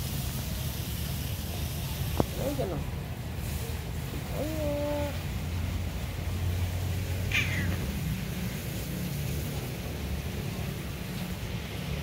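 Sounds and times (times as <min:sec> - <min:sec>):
cat mewing: 0:04.2 - 0:05.2, 0:07.2 - 0:08.1.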